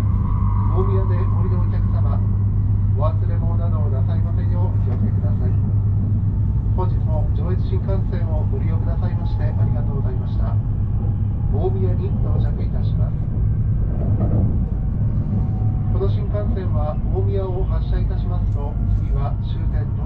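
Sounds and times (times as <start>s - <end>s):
indistinct voices: 0.0s - 20.0s
train running low rumble: 0.0s - 20.0s.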